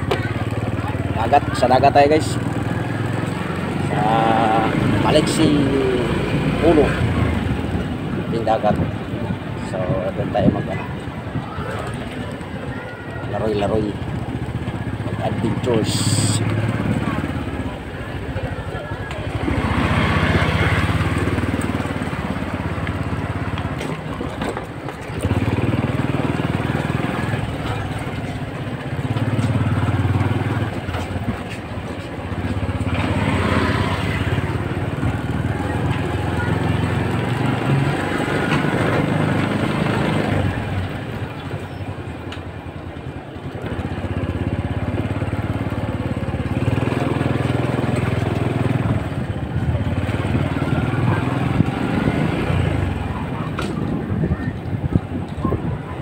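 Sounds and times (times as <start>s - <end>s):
road and wind noise: 0.0s - 56.0s
small motorcycle engine running: 0.0s - 56.0s.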